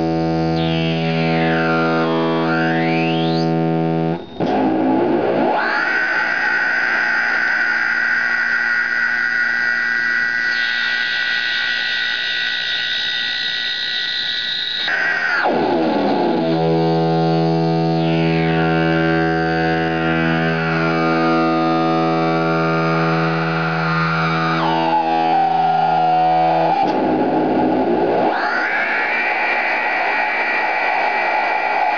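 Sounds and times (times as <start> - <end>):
electronic guitar drone: 0.0 - 31.9.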